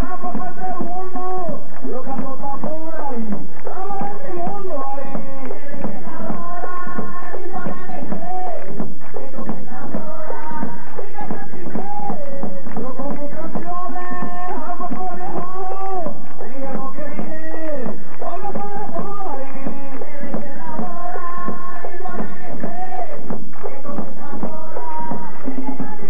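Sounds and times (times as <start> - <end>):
hand drum beats: 0.0 - 26.0
person singing: 0.0 - 26.0.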